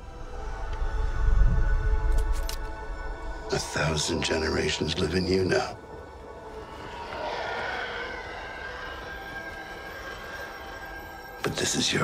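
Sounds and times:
starfighter engine roar: 0:06.1 - 0:11.7.

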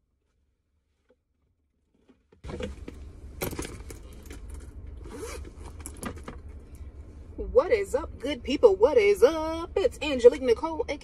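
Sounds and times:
low rumble inside a car: 0:00.1 - 0:11.0
zipper-like scrape: 0:05.0 - 0:05.5.

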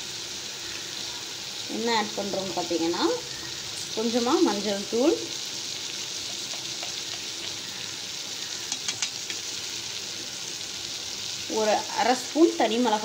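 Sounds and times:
vegetables sizzling in hot oil: 0:00.0 - 0:13.0.

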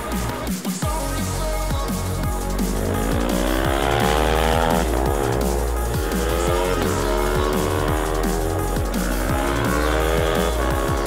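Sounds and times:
drum and bass music: 0:00.0 - 0:11.0
motorcycle engine accelerating past: 0:02.7 - 0:11.0.

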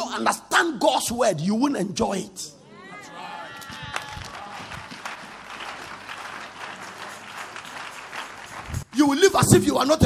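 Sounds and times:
crowd clapping: 0:03.5 - 0:10.0.

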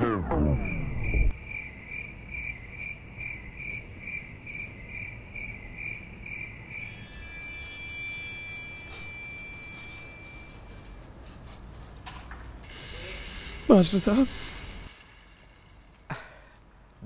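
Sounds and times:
crickets chirping: 0:00.4 - 0:11.2, 0:12.6 - 0:16.6.

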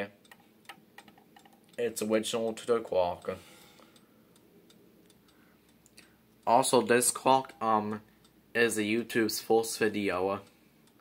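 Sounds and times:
clock ticking faintly: 0:00.0 - 0:11.0.

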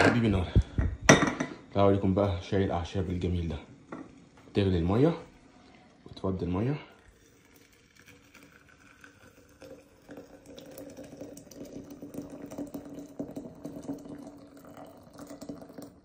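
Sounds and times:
hot water pouring into teapot: 0:01.6 - 0:16.0.

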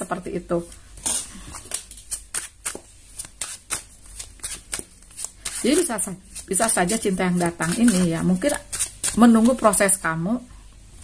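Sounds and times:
cards being shuffled: 0:01.0 - 0:09.7.

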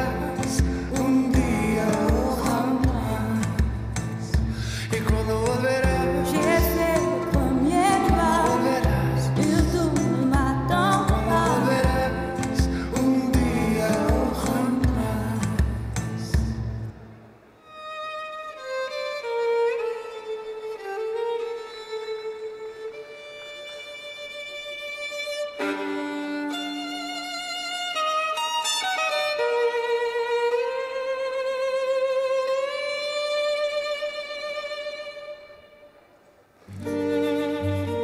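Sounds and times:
violin playing slow melody: 0:17.6 - 0:38.0.

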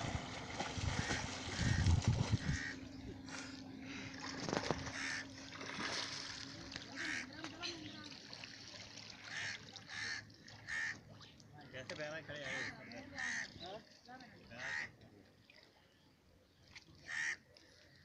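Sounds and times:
steady low hum: 0:00.0 - 0:09.2
water splashing: 0:00.0 - 0:15.8.

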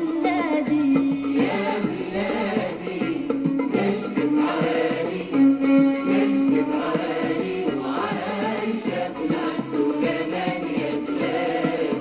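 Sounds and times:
voices singing together: 0:00.0 - 0:12.0.

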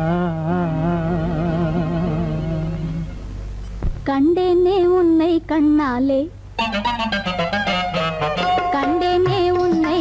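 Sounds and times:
man singing a long vibrato note: 0:00.0 - 0:03.2.

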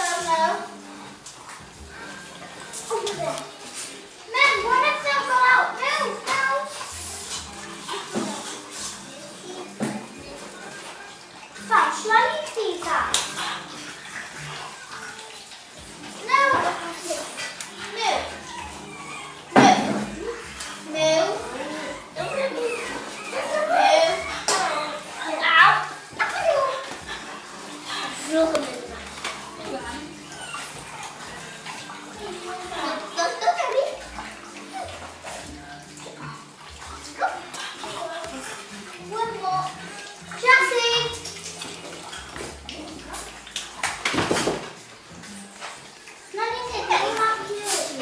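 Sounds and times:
dog lapping water from bowl: 0:00.0 - 0:48.0.

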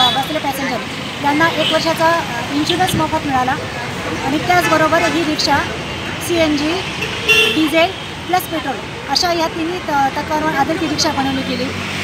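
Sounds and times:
woman speaking: 0:00.0 - 0:03.6, 0:04.2 - 0:06.9, 0:07.6 - 0:11.8
vehicle horn toot: 0:07.0 - 0:07.6.

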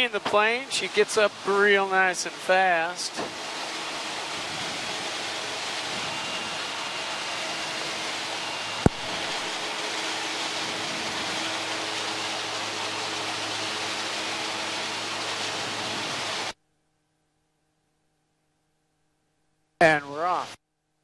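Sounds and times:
turboprop engine and air noise: 0:00.0 - 0:16.6.

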